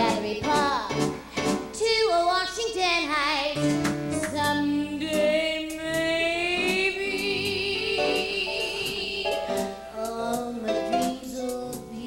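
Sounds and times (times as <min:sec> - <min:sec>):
live band playing: 0:00.0 - 0:01.9, 0:03.5 - 0:12.0
woman singing: 0:00.0 - 0:12.0
drum hits: 0:03.6 - 0:05.3.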